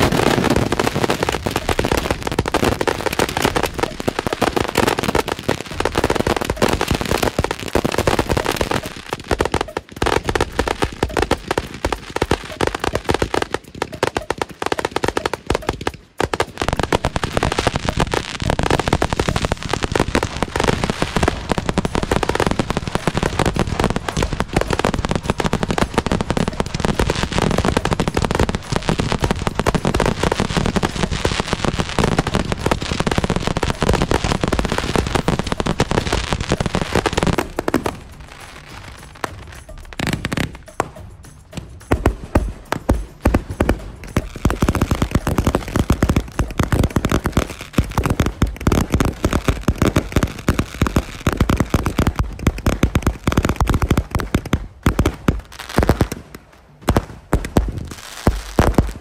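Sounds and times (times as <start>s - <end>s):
firework launches and crackling bursts: 0.0s - 59.0s.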